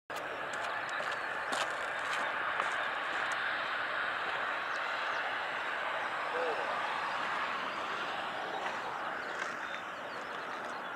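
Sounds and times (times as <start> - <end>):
jet engines roaring: 0.1 - 10.9.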